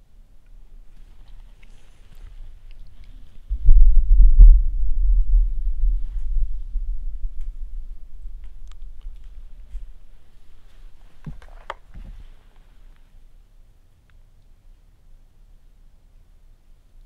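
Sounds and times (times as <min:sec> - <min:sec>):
camera handling rumble: 0:11.0 - 0:12.6.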